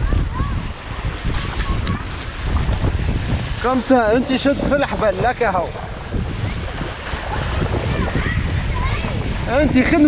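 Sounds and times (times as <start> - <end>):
water rushing and splashing: 0.0 - 10.0
wind buffeting microphone: 0.0 - 10.0.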